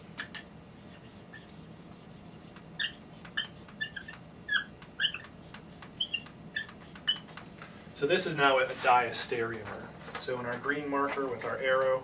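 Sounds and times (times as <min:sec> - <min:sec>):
marker squeaking on whiteboard: 0:00.2 - 0:07.6.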